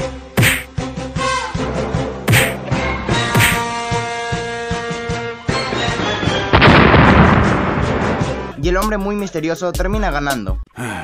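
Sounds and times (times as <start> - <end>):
sharp hit: 0.4 - 0.7, 2.3 - 2.6, 3.4 - 3.6.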